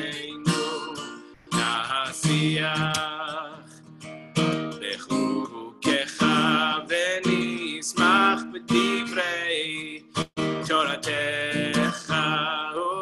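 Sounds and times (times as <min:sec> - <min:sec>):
person singing: 0:00.0 - 0:03.8, 0:04.8 - 0:13.0
acoustic guitar strummed: 0:00.0 - 0:13.0.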